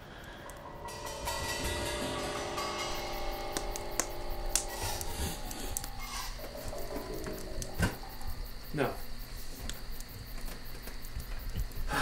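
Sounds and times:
insect chirring: 0.0 - 12.0.

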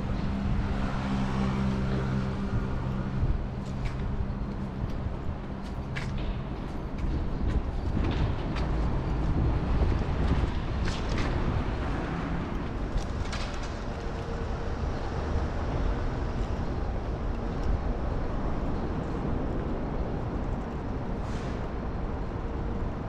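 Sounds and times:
road traffic rumble: 0.0 - 23.0.

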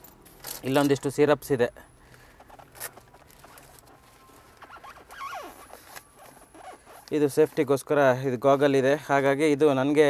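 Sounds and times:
bag rustling and scraping: 2.2 - 7.7
squeaky falling glides: 2.9 - 7.1.

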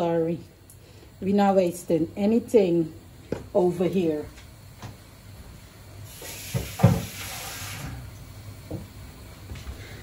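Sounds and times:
rice sizzling in pot: 6.0 - 8.1.

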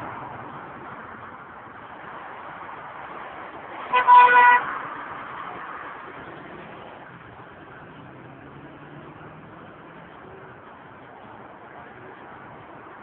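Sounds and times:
street traffic noise: 0.0 - 13.0
car horn honking: 3.9 - 4.7.

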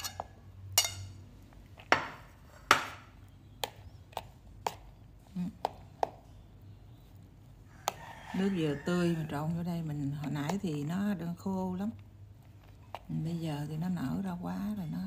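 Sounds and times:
metal spoon clinking on bowl: 0.0 - 1.2.

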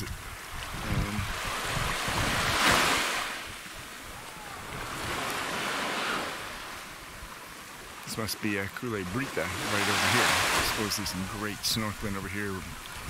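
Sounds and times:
wind rumbling on microphone: 0.0 - 5.8, 9.1 - 13.0
small waves on pebbly shore: 0.0 - 13.0.

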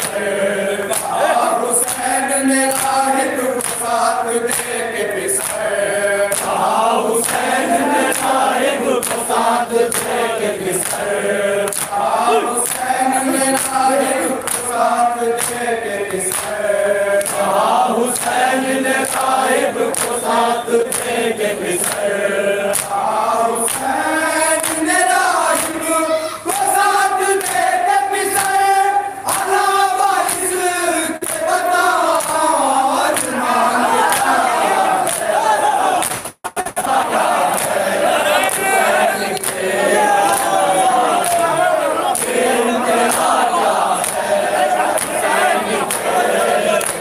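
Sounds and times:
men chanting a lament: 0.0 - 47.0
hands slapping chests: 0.9 - 1.2, 1.8 - 2.1, 3.6 - 3.9, 4.5 - 4.8, 5.4 - 5.7, 6.3 - 6.6, 7.2 - 8.4, 9.0 - 9.3, 9.9 - 10.2, 11.7 - 12.0, 12.6 - 12.9, 14.5 - 14.7, 15.4 - 16.6, 19.9 - 20.2, 21.8 - 22.1, 30.2 - 30.5, 32.2 - 32.4, 33.2 - 33.4, 34.0 - 34.4, 35.0 - 35.3, 36.0 - 37.8, 39.4 - 39.6, 40.2 - 41.5, 42.1 - 42.5, 43.1 - 43.4, 44.0 - 44.3, 44.9 - 46.2.

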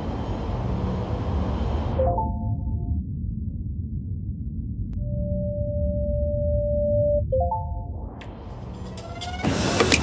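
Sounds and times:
low rumbling drone: 0.0 - 9.8.

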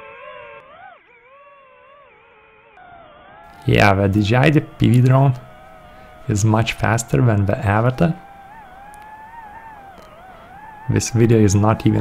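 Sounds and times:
drone propellers whining: 2.8 - 12.0.

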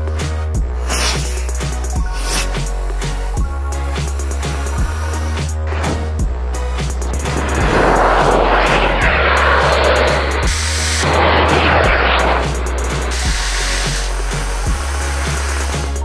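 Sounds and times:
background music with steady beat: 0.0 - 16.0
rocket motor rushing hiss: 0.7 - 2.7, 4.2 - 5.6, 6.9 - 16.0.

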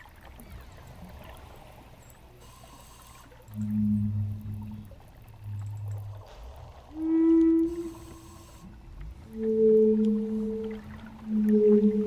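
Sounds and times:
wooden flute low note: 6.9 - 8.5, 9.3 - 12.0.

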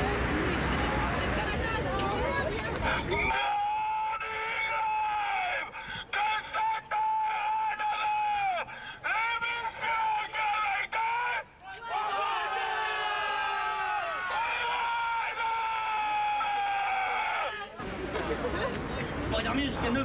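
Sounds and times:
man yelling through a megaphone: 3.0 - 12.4.

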